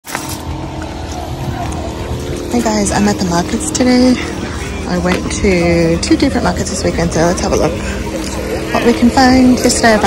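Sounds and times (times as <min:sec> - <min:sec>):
distant voices: 0:00.0 - 0:10.0
low steady rumble: 0:00.2 - 0:10.0.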